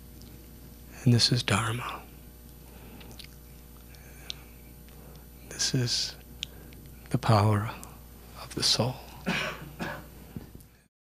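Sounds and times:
person clearing throat: 9.2s - 10.1s.

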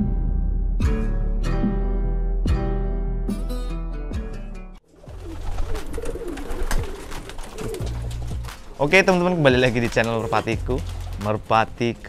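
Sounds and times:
pigeons cooing: 4.9s - 11.2s.

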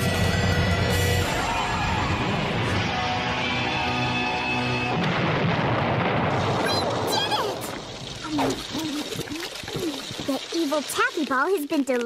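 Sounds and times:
rumbling explosion: 4.8s - 10.6s.

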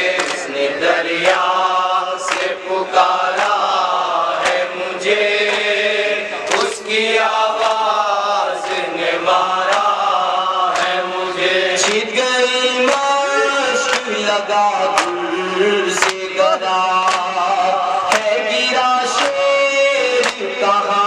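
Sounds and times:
men chanting a lament: 0.0s - 21.0s
sharp beat: 13.0s - 17.3s.

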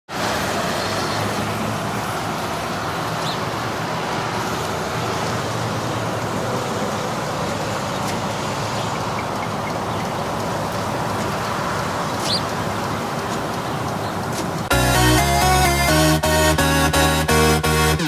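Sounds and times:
city traffic rumble: 0.1s - 18.0s.

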